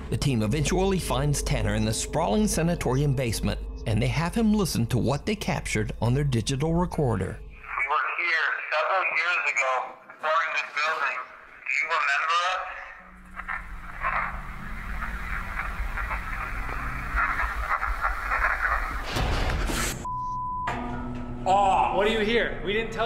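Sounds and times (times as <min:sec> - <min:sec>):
voices talking: 0:00.2 - 0:19.1
low hum: 0:12.9 - 0:21.6
recording hiss: 0:13.2 - 0:19.1.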